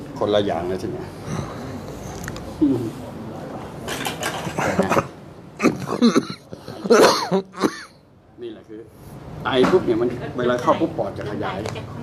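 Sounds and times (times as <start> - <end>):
person coughing: 5.6 - 7.9.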